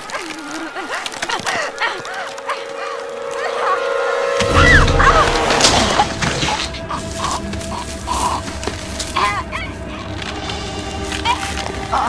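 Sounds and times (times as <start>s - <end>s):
low rumbling drone: 2.2s - 12.0s.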